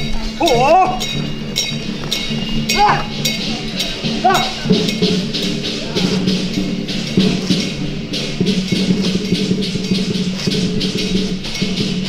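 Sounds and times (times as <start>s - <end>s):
bright cymbal strikes: 0.0s - 12.0s
percussion steady beat: 0.0s - 12.0s
sustained low melody: 0.0s - 12.0s.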